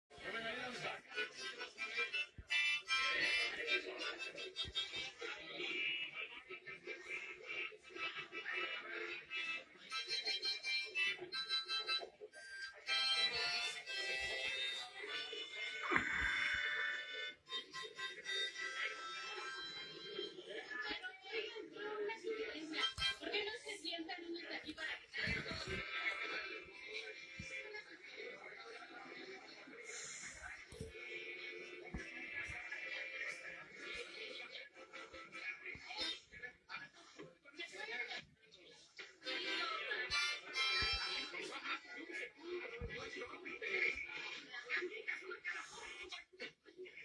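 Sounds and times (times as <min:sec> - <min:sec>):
music with voices from television: 0:00.0 - 0:47.0.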